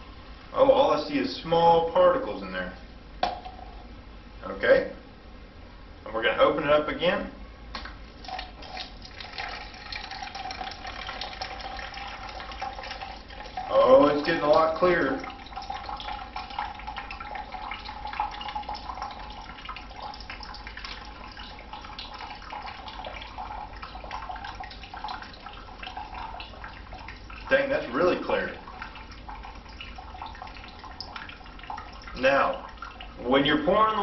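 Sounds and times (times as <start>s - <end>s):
water trickling: 8.1s - 34.0s.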